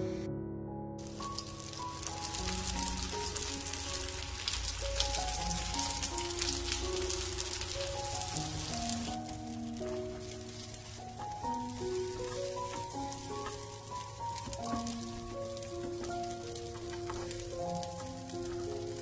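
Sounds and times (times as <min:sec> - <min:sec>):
slow background music: 0:00.0 - 0:19.0
food sizzling in oil: 0:01.0 - 0:19.0.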